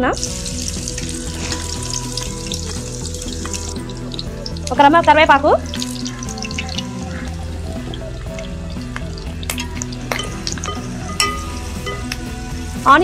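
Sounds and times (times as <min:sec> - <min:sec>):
onions sizzling in hot oil: 0:00.0 - 0:13.0.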